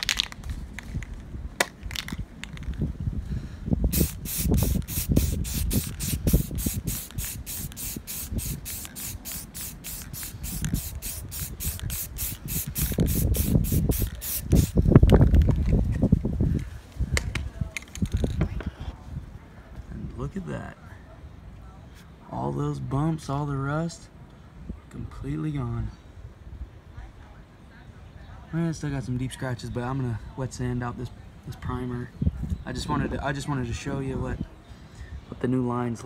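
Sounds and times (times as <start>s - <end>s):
wind rumble on microphone: 0.0s - 20.6s, 30.2s - 35.3s
aerosol spray can hissing: 3.9s - 14.8s.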